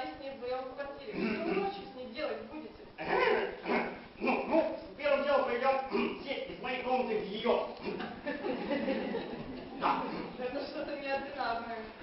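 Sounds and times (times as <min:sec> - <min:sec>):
person crying out wordlessly: 0:03.0 - 0:04.4.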